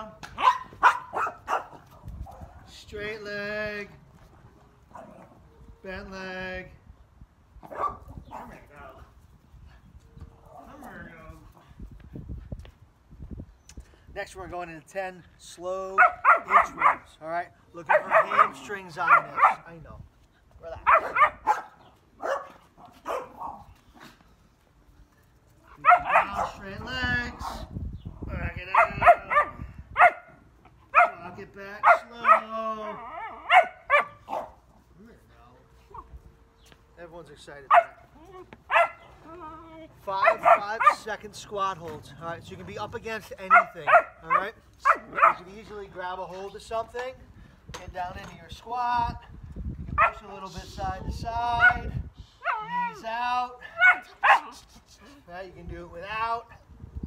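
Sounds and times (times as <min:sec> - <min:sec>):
footsteps on concrete: 0:00.1 - 0:02.5, 0:35.9 - 0:37.0, 0:37.8 - 0:41.1
puppy barking: 0:00.4 - 0:02.5, 0:07.7 - 0:08.5, 0:16.0 - 0:17.1, 0:17.9 - 0:19.6, 0:20.8 - 0:23.6, 0:25.7 - 0:26.6, 0:28.7 - 0:31.2, 0:31.8 - 0:32.5, 0:33.1 - 0:34.6, 0:37.7 - 0:38.1, 0:38.7 - 0:39.2, 0:40.2 - 0:41.1, 0:43.5 - 0:45.4, 0:50.0 - 0:50.2, 0:53.7 - 0:54.5.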